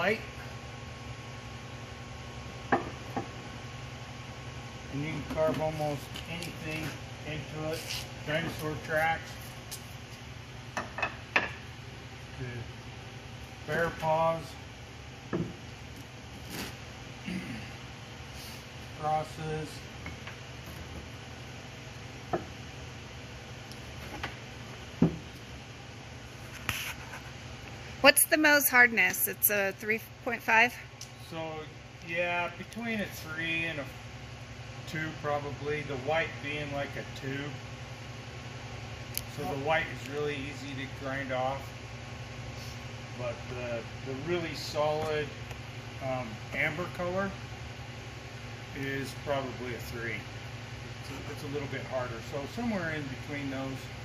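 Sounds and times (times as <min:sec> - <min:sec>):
low room hum: 0:00.0 - 0:54.0
stone knocking on workbench: 0:02.7 - 0:03.3, 0:15.3 - 0:15.6.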